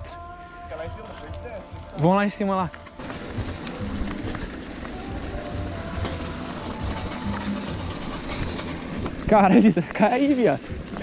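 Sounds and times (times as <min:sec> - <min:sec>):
bicycle tyre noise on dirt: 0:00.0 - 0:11.0.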